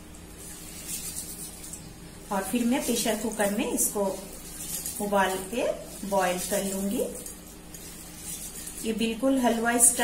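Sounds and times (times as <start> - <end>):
lentils swishing in water: 0.2 - 10.0.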